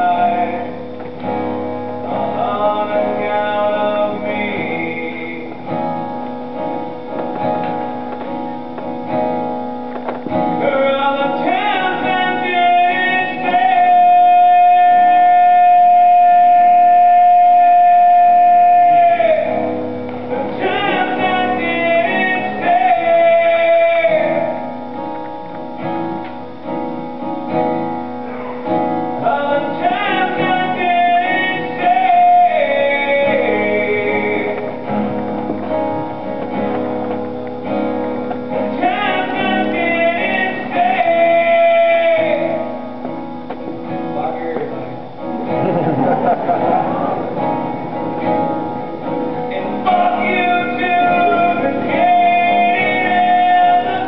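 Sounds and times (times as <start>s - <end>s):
man singing: 0.0s - 8.5s, 10.3s - 25.6s, 28.3s - 37.2s, 38.3s - 43.6s, 44.3s - 54.0s
acoustic guitar: 0.0s - 54.0s.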